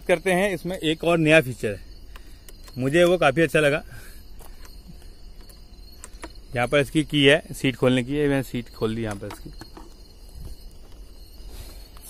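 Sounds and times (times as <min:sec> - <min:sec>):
insect trilling: 0:00.0 - 0:12.0.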